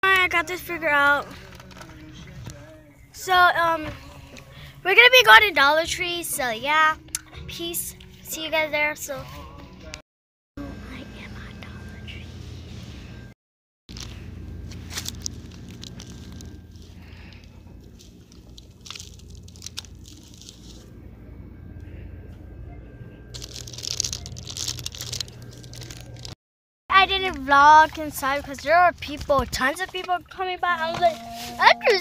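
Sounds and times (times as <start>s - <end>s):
rustling and crinkling handling noise: 1.2s - 2.6s, 13.9s - 21.0s, 23.3s - 26.4s
girl whispering: 10.6s - 12.3s
steady low hum: 10.6s - 13.3s, 13.9s - 26.4s.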